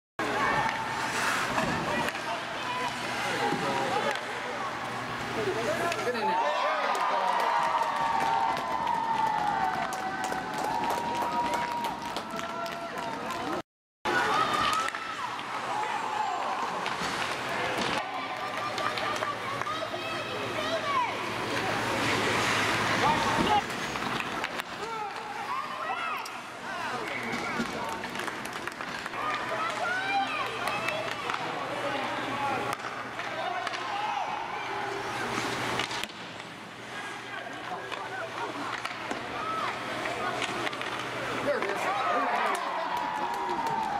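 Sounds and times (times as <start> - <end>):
crowd cheering: 5.9 - 36.2, 36.9 - 43.9
scattered clapping: 6.9 - 13.6, 42.4 - 43.9
sticks and puck clicking on ice: 16.8 - 19.8, 27.0 - 31.6, 37.5 - 43.9.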